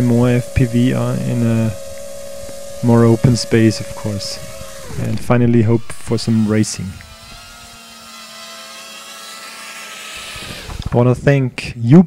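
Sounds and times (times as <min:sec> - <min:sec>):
quadcopter motors whirring: 0:00.0 - 0:11.1.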